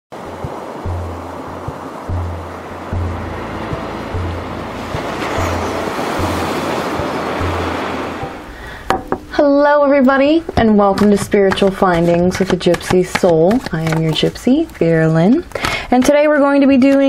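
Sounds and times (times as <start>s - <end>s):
ocean surf washing in: 0.1s - 8.9s
slow low bass notes: 0.4s - 8.6s.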